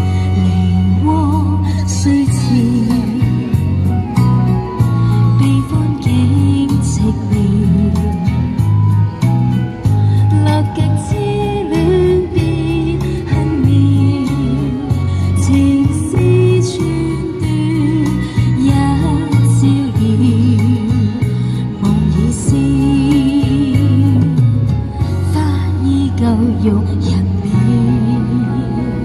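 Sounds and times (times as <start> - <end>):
pop backing track on speaker: 0.0 - 29.0
woman singing into microphone: 0.0 - 29.0.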